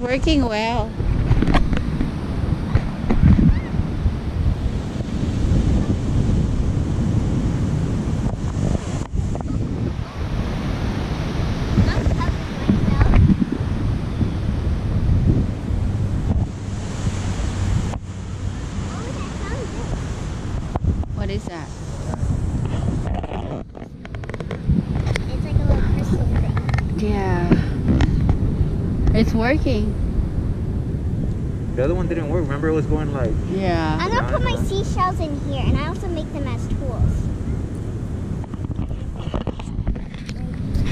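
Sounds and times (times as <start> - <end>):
ocean surf: 0.0 - 40.9
wind buffeting microphone: 0.0 - 40.9.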